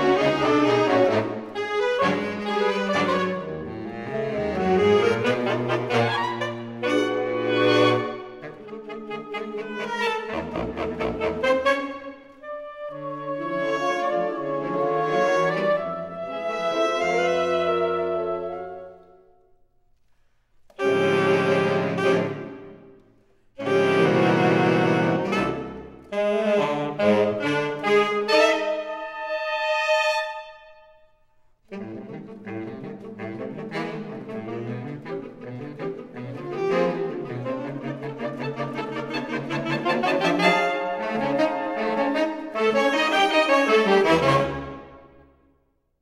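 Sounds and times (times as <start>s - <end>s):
saxophone ensemble chords: 0.0s - 19.3s, 20.7s - 31.0s, 31.6s - 45.4s.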